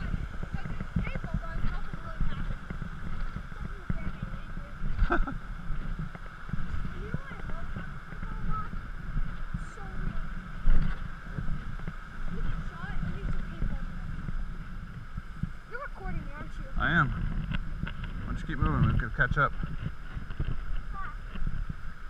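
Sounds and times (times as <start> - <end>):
camera thumps and rumble: 0.0 - 22.0
creek rushing: 0.0 - 22.0.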